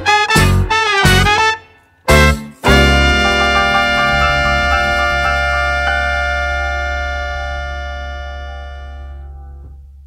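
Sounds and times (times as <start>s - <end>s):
piano chord ringing: 2.6s - 9.2s
low bass note: 2.7s - 10.0s.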